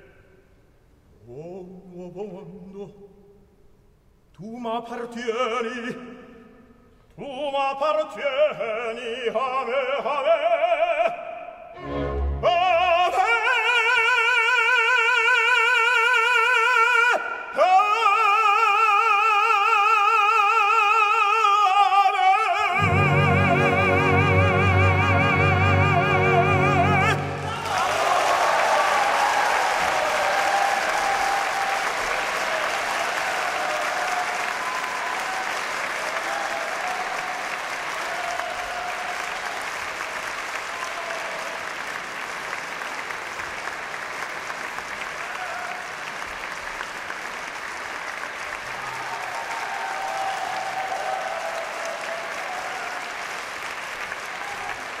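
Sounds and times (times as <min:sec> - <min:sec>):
audience applauding: 0:27.0 - 0:55.0.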